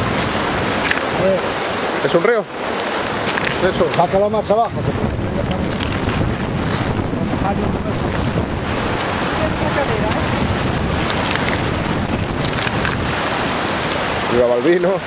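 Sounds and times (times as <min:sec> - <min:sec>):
wind buffeting microphone: 0:00.0 - 0:02.0, 0:02.6 - 0:15.0
river water rushing over stones: 0:00.0 - 0:15.0.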